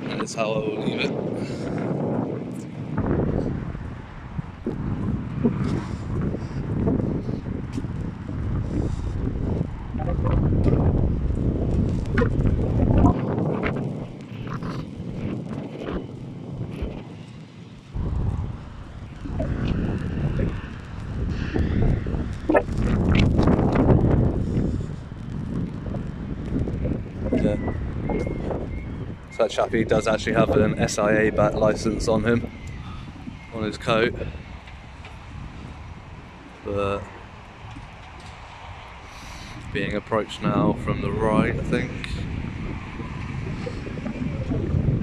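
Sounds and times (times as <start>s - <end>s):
wind buffeting microphone: 0.0s - 45.0s.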